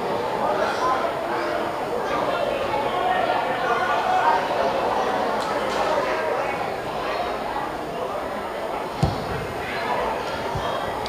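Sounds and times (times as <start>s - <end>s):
distant murmur of voices: 0.0s - 11.0s.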